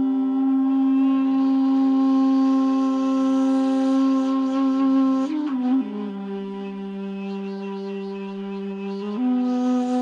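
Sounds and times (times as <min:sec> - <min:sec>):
flute-like long note: 0:00.0 - 0:10.0.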